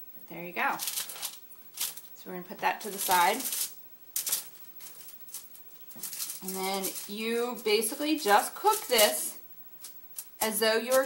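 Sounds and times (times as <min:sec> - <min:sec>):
aluminium foil crinkling: 0:00.6 - 0:11.0.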